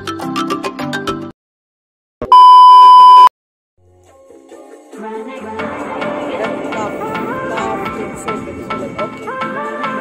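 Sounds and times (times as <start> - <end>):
electronic test tone beep: 2.2 - 3.3.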